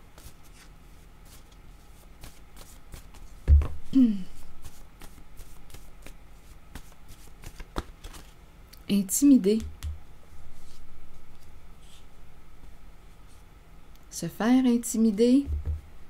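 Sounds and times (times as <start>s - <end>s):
cards being shuffled: 0.1s - 3.8s, 4.6s - 8.4s.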